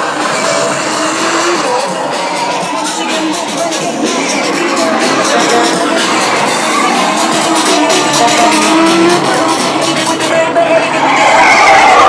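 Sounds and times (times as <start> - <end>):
music: 0.0 - 12.0
racing car engines: 0.0 - 12.0.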